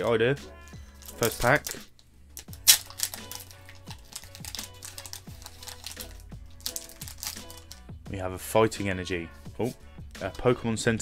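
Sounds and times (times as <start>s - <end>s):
background music: 0.0s - 11.0s
foil wrapper tearing and crinkling: 1.0s - 1.8s, 2.4s - 7.8s.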